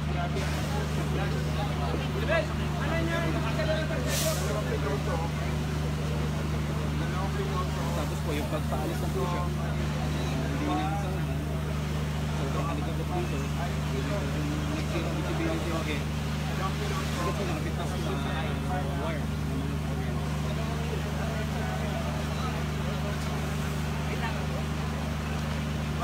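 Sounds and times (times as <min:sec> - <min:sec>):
people talking: 0:00.0 - 0:26.0
short hiss: 0:04.1 - 0:04.6.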